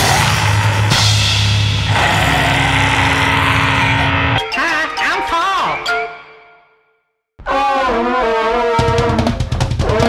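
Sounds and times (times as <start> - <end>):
distorted guitar and bass chord: 0.0 - 4.4.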